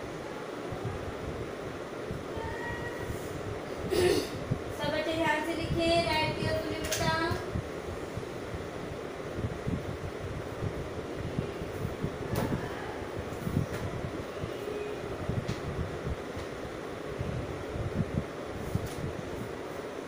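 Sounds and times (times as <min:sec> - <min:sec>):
fan rumble and hiss: 0:00.0 - 0:20.0.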